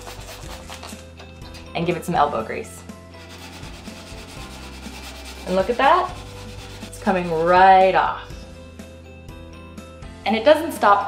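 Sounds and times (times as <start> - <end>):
sponge scrubbing glass: 3.2 - 7.8.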